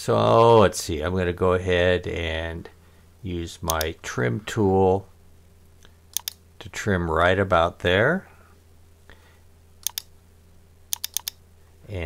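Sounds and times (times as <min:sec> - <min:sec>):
faint low hum: 0:00.0 - 0:12.0
computer mouse clicks: 0:05.8 - 0:06.4, 0:09.8 - 0:10.1, 0:10.9 - 0:11.4.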